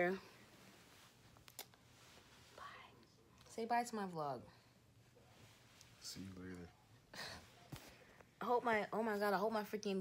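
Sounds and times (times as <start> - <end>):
person whispering: 2.5 - 3.2.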